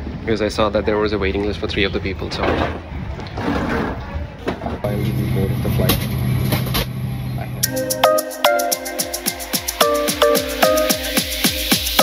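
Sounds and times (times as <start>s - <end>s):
indistinct voices and bustle: 0.2s - 6.6s.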